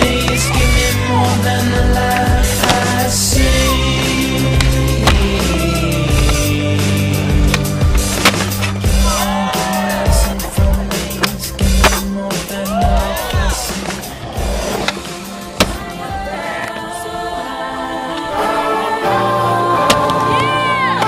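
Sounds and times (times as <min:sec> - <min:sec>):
hip-hop music: 0:00.0 - 0:21.0
skateboard wheels rolling on concrete: 0:00.0 - 0:21.0.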